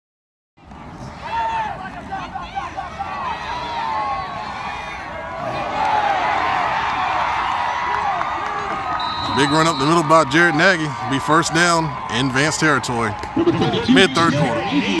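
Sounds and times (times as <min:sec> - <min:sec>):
spectators yelling and cheering: 0:00.8 - 0:15.0.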